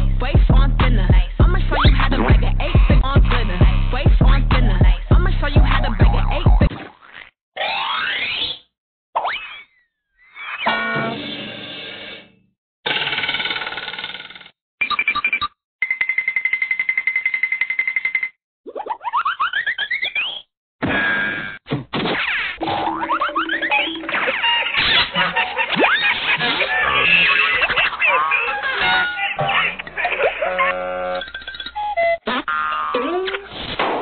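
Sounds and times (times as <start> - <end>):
music: 0.0 - 6.7
cartoon boing: 22.6 - 24.8.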